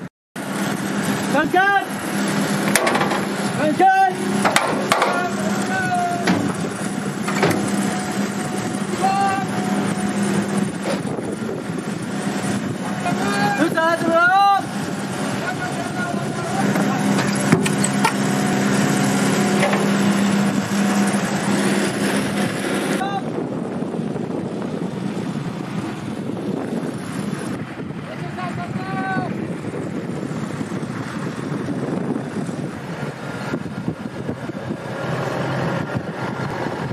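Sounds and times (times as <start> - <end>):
engine running: 0.0 - 36.9
men shouting: 3.6 - 6.6, 8.9 - 10.2, 12.9 - 17.2.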